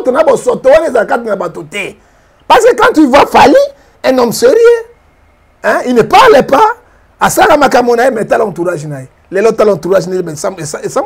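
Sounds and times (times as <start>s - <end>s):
person talking: 0.0s - 4.9s, 5.6s - 11.0s.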